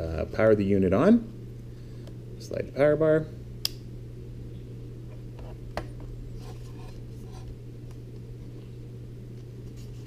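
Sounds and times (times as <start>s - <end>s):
steady low hum: 0.0s - 10.0s
plastic device rubs and rustles: 6.4s - 7.6s, 9.4s - 10.0s.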